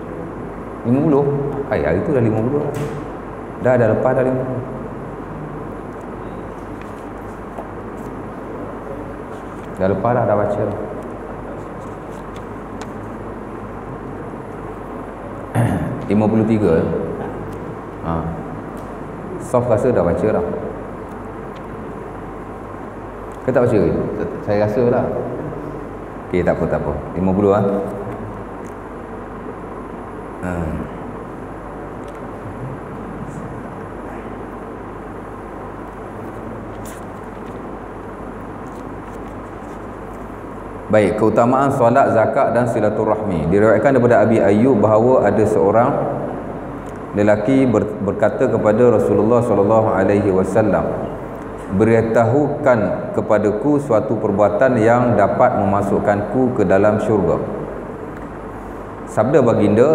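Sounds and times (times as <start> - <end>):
room hiss and low hum: 0.0 - 59.9.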